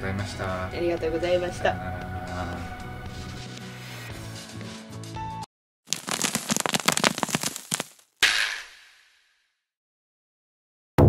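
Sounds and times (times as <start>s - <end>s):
sharp pops and crackles: 5.9s - 8.1s.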